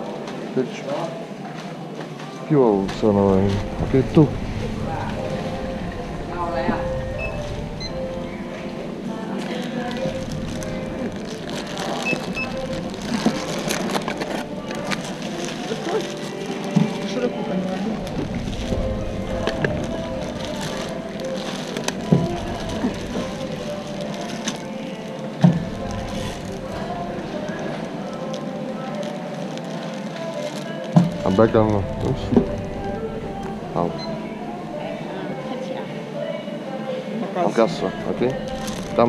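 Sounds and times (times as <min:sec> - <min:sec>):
indistinct voices: 0:00.0 - 0:39.0
shop background music: 0:00.0 - 0:39.0
store background noise: 0:00.0 - 0:39.0
plastic bag rustling: 0:01.0 - 0:35.2, 0:37.7 - 0:39.0.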